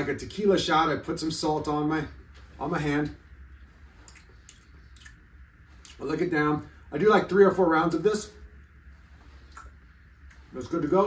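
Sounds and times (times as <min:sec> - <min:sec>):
soft clicks and rustles: 0:01.4 - 0:06.2, 0:08.4 - 0:11.0.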